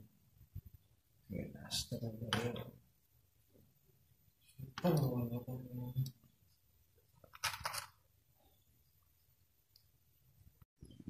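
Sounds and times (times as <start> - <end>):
small hard parts clattering: 7.2 - 8.0.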